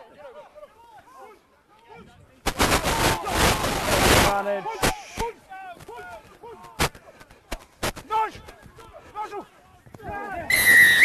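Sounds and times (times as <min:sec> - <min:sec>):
players and spectators shouting: 0:00.0 - 0:07.0, 0:08.0 - 0:11.0
referee's whistle blast: 0:10.5 - 0:11.0.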